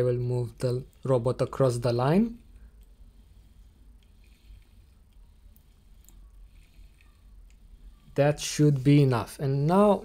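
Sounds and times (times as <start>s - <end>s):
robot scraping across paper: 0.6s - 10.0s.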